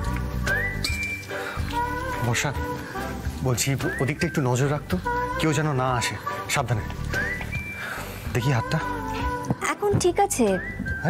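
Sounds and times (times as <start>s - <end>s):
low musical accompaniment: 0.0s - 11.0s
whistled melody: 0.3s - 2.4s, 3.4s - 6.0s, 7.0s - 9.3s, 10.2s - 11.0s.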